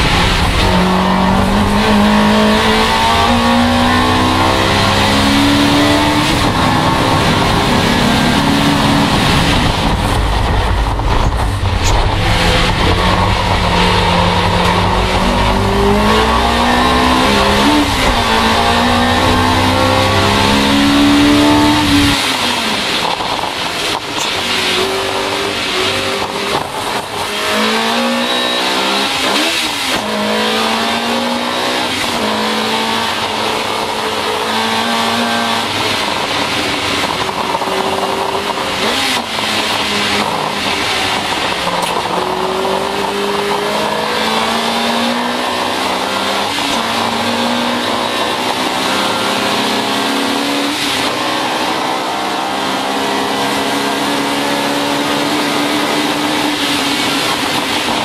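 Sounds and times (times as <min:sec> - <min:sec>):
race car engine accelerating: 0:00.0 - 0:58.0.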